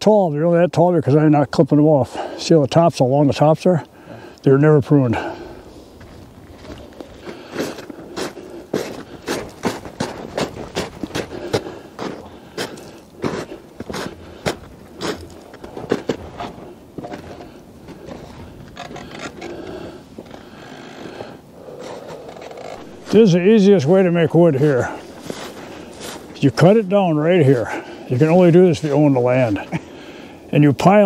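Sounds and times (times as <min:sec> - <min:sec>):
footsteps crunching through snow: 0:05.6 - 0:20.2, 0:21.0 - 0:29.8.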